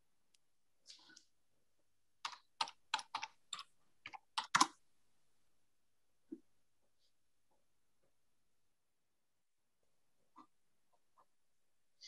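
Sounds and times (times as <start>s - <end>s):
computer keyboard typing: 2.2s - 4.8s.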